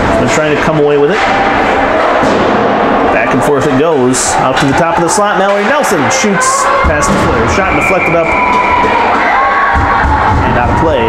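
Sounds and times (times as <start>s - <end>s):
people calling out: 4.0s - 11.0s
hockey sticks and puck clacking: 4.4s - 11.0s.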